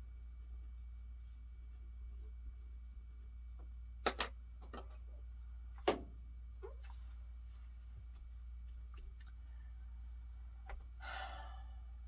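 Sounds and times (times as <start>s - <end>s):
steady low hum: 0.0s - 12.0s
person sighing: 11.0s - 12.0s.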